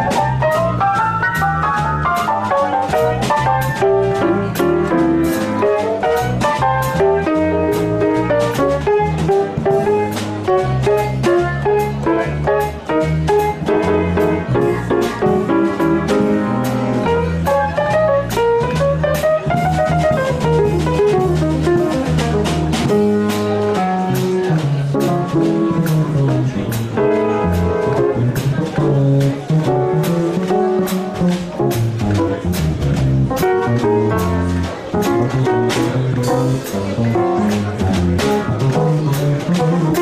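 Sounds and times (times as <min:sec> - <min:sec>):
swing jazz piano: 0:00.0 - 0:40.0.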